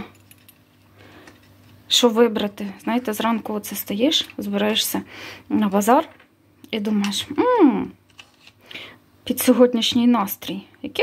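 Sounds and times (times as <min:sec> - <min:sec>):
metal rings clinking: 0:00.0 - 0:01.6.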